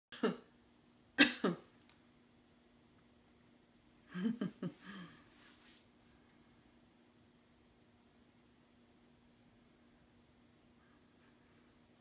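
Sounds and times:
woman coughing: 1.2 - 1.7.

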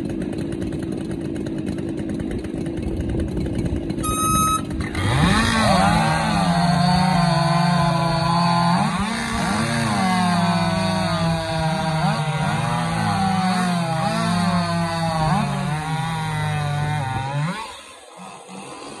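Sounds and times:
chainsaws cutting logs: 0.0 - 19.0.

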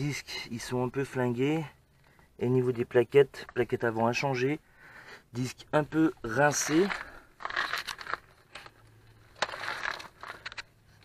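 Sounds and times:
gravel crunching and scraping: 5.8 - 11.0.

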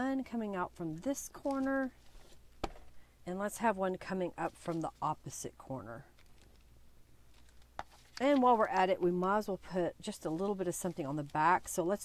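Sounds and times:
paper handling: 1.4 - 2.9, 7.3 - 9.1.

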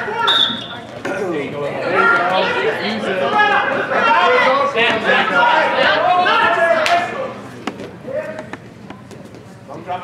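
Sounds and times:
indistinct chatter of voices: 0.0 - 10.0.

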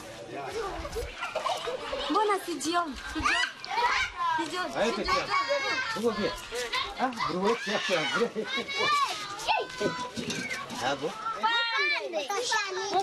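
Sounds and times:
children calling and chattering: 0.0 - 13.0.

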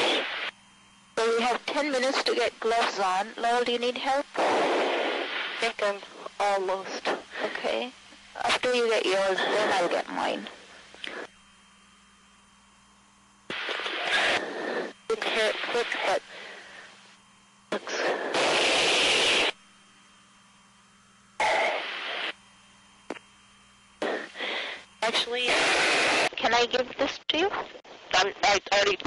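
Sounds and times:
faint steady hum: 0.0 - 29.0
intercom bursts with hiss and voice: 13.5 - 16.5.

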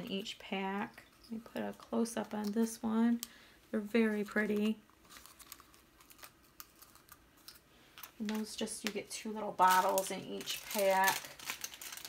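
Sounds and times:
plastic bottles and packaging clicking: 0.0 - 3.4, 4.2 - 12.0.

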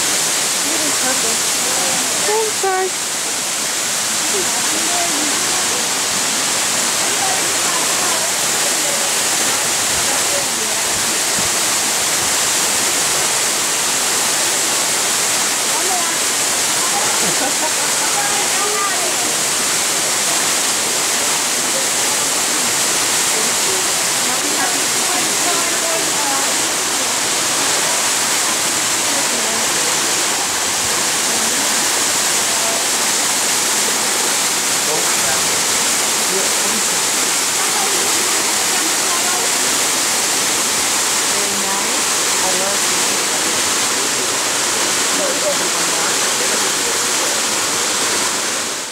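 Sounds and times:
waterfall pouring into a pool: 0.0 - 48.9.

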